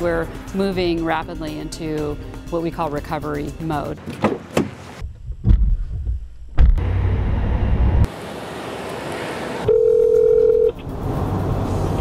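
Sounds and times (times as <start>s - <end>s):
telephone ringing tone: 9.6s - 10.8s.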